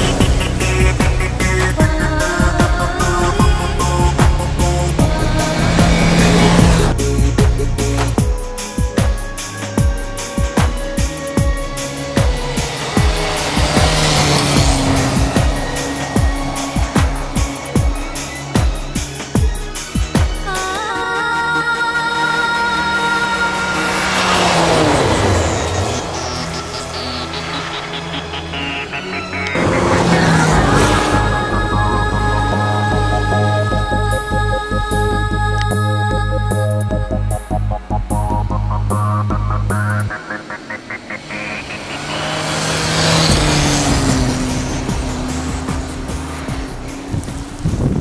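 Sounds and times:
rally car passing at speed: 0.0s - 8.2s, 10.2s - 20.2s, 22.2s - 34.1s, 38.2s - 48.0s
tyres on snow: 0.0s - 8.2s, 9.5s - 20.7s, 22.5s - 34.0s, 38.3s - 48.0s.

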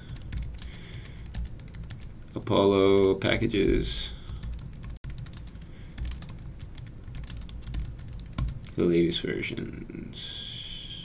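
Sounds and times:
fast typing on keyboard: 0.0s - 3.7s, 4.3s - 8.9s.

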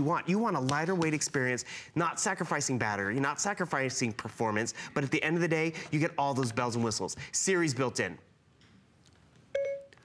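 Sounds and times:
electronic activation chime: 9.6s - 10.0s.

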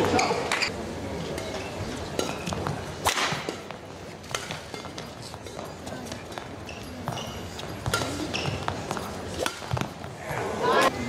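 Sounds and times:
rackets hitting shuttlecock: 1.4s - 10.2s
shoes squeaking on court: 1.6s - 10.6s
murmuring crowd: 5.7s - 11.0s.

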